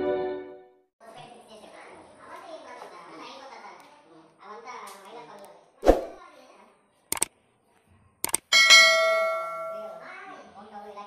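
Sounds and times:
double mouse click: 8.2s - 8.4s
bright bell chime: 8.6s - 10.0s.

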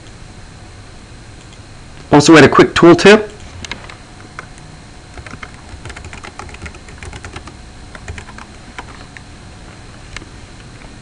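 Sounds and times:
computer keyboard typing: 5.2s - 9.0s.

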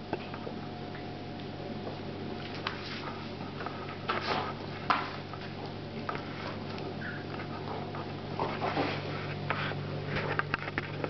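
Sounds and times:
dogs play-wrestling: 2.4s - 10.4s.

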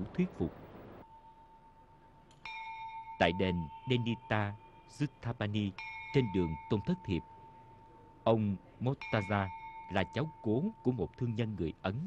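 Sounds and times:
bell ringing: 1.0s - 11.8s.

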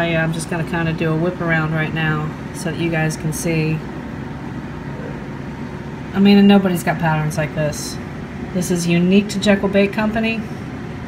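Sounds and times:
machine hum and hiss: 0.0s - 11.0s.

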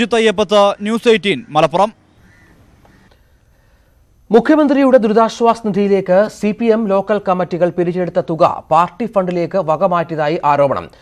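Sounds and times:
faint outdoor background: 0.0s - 11.0s
distant bird calling: 0.6s - 4.0s.

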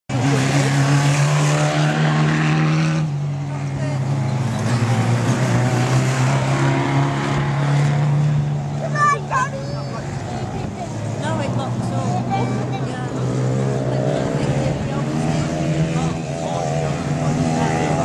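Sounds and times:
stock car engines running: 0.1s - 18.0s.

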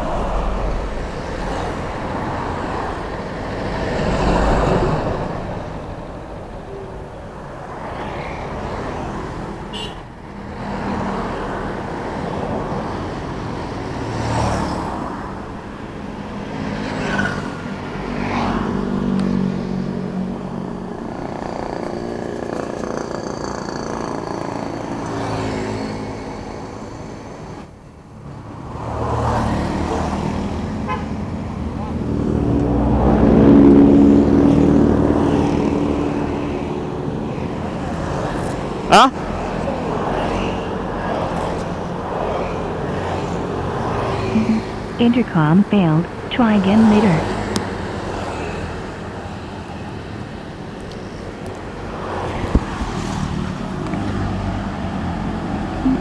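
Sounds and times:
cars passing: 0.0s - 56.0s
motorcycles passing: 0.0s - 56.0s.

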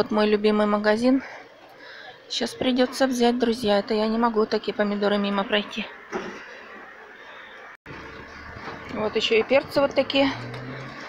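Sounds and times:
outdoor street background noise: 0.0s - 11.0s.

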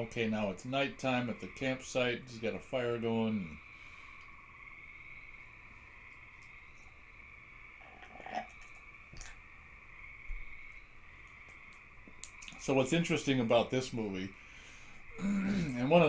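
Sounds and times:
frogs and insects trilling: 0.0s - 16.0s.

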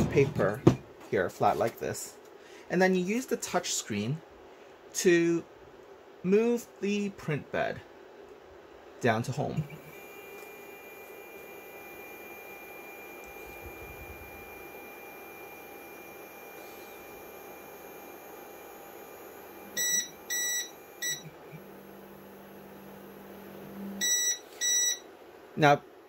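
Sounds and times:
stepper motor hum and whine: 9.8s - 24.2s
printer buzzer beeps: 14.5s - 21.7s, 23.9s - 25.1s.

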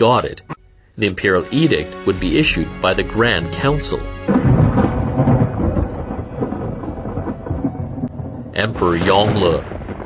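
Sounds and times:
thunder rumbling: 2.1s - 10.0s.

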